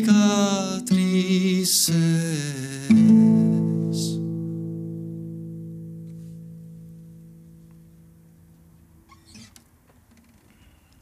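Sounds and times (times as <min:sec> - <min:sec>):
acoustic guitar note ringing: 0:00.0 - 0:09.4
guitar being handled: 0:05.8 - 0:10.6.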